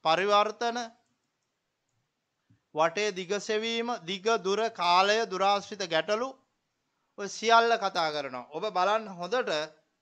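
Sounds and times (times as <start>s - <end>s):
man speaking: 0.0s - 0.9s, 2.8s - 6.4s, 7.2s - 9.7s.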